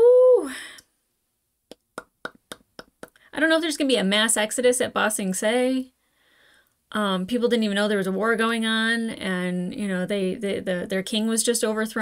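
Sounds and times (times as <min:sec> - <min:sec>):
mouth clicks and lip smacks: 0:01.7 - 0:03.2.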